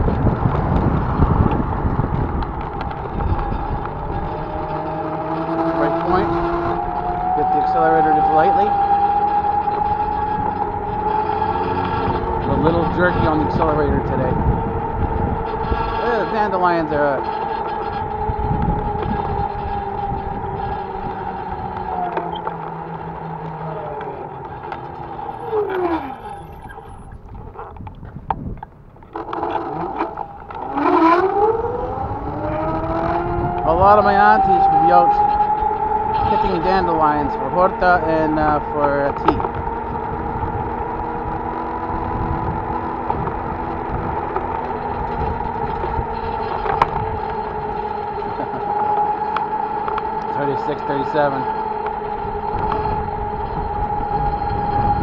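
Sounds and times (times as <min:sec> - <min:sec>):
road and wind noise: 0:00.0 - 0:55.0
small vehicle motor whine: 0:00.0 - 0:55.0.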